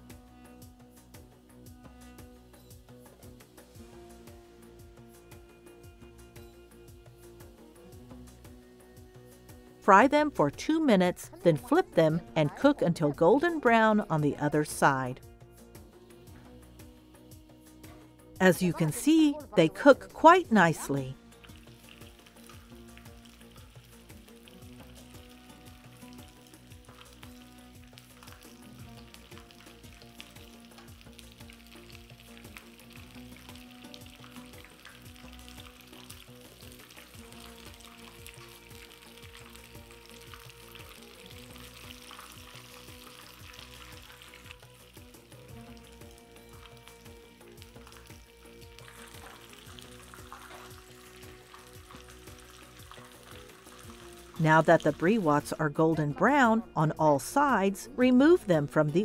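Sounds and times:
pastry sizzling in hot oil: 0.0 - 55.5.

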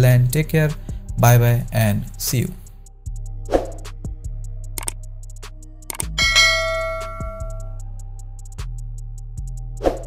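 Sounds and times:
background music with steady beat: 0.0 - 10.0
bell chime ding: 6.2 - 7.8.

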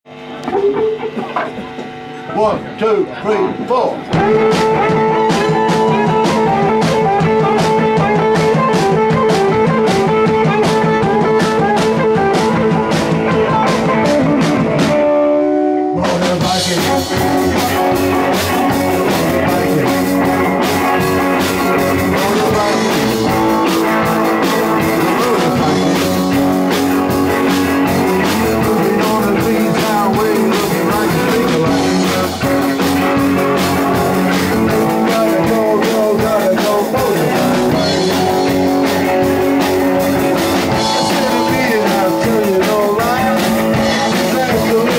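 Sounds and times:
electric guitars: 0.1 - 44.9
drum kit beat: 0.5 - 44.9.

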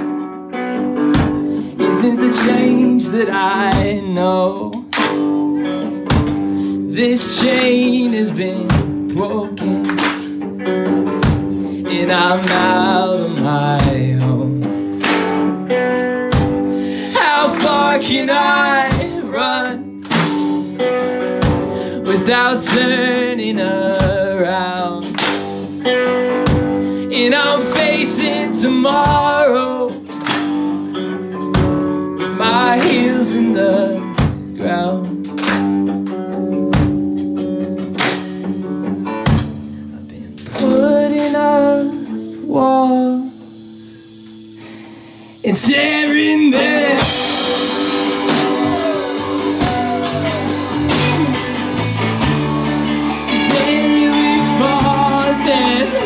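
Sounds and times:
drum kit: 0.0 - 41.9, 43.3 - 56.0
electric guitars playing chords: 0.0 - 56.0
drum and cymbal hits: 46.8 - 56.0.

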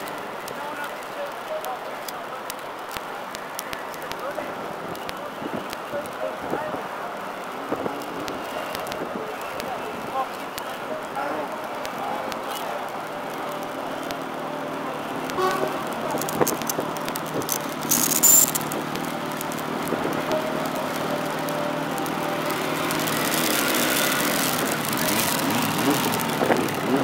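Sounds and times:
road traffic: 0.0 - 27.0
vehicle passing: 12.9 - 27.0
high-pitched squeal: 16.2 - 18.8.

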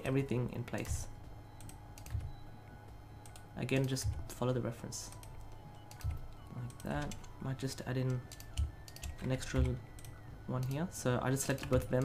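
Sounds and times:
keyboard key presses: 0.7 - 4.4, 5.1 - 7.4.

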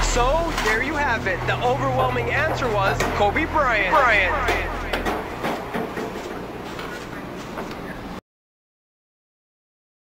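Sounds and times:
indistinct talking: 0.0 - 8.2
steady low hum: 0.0 - 8.2.

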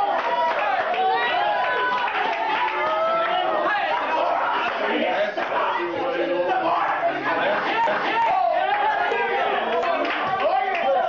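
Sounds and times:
congregation praying aloud: 0.0 - 11.0.

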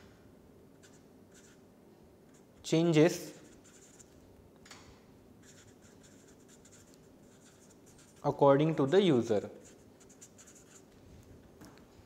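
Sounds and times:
marker pen writing on paper: 0.8 - 1.6, 3.3 - 4.2, 5.4 - 8.2, 9.6 - 10.9.

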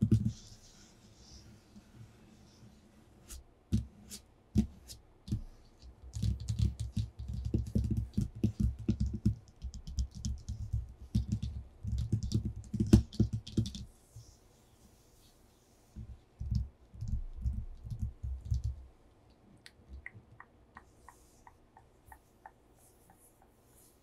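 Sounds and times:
fingertips tapping on paper: 4.6 - 14.0, 16.0 - 18.8.

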